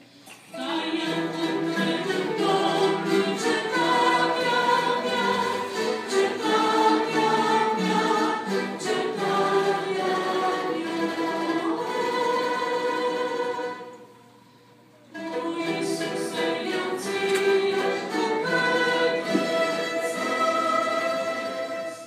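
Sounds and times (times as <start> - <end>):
choir singing a hymn: 0.5 - 14.2, 15.1 - 22.0
strings playing: 0.6 - 14.0, 15.1 - 22.0.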